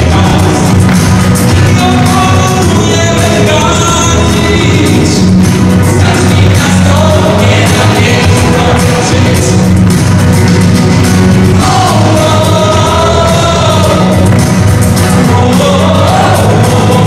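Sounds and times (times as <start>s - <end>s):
amplified backing music: 0.0s - 17.0s
group of singers: 0.0s - 17.0s.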